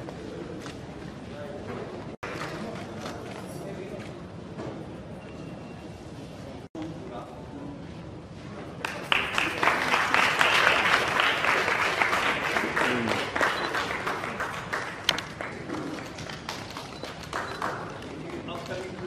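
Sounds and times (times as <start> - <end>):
audience applauding: 8.8 - 19.0.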